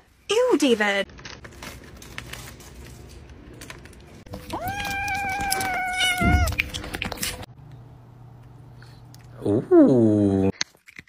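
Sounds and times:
cat meowing: 0:04.4 - 0:06.6.

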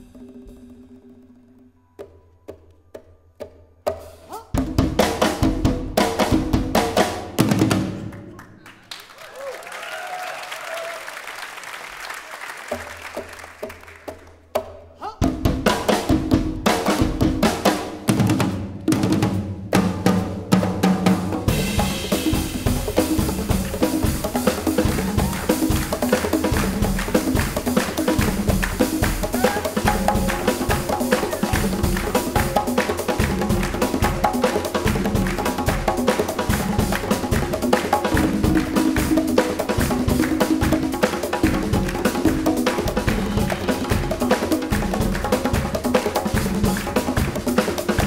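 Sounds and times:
hand drums: 0:00.0 - 0:08.1, 0:12.7 - 0:48.0
drum kit: 0:00.0 - 0:08.2, 0:14.1 - 0:48.0
congas: 0:00.0 - 0:48.0
cymbals: 0:21.4 - 0:42.0.

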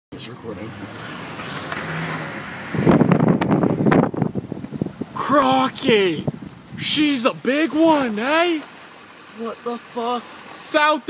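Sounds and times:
microphone rumbling and crackling: 0:02.6 - 0:05.2.

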